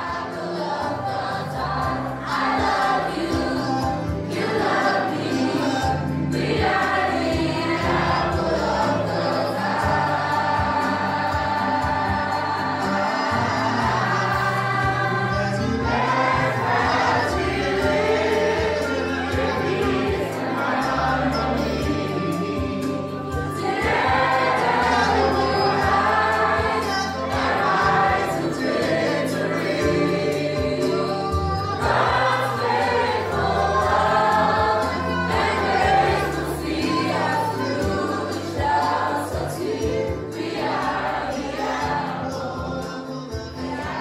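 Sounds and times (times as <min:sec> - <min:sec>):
choir singing a hymn: 0:00.0 - 0:44.0
instrumental accompaniment with bass: 0:00.0 - 0:44.0.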